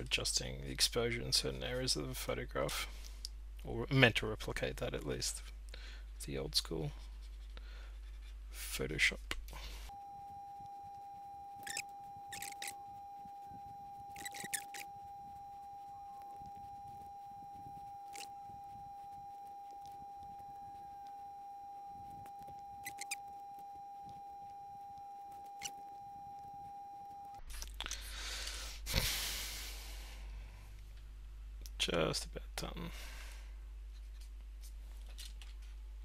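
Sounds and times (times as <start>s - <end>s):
steady high tone: 9.9s - 27.4s.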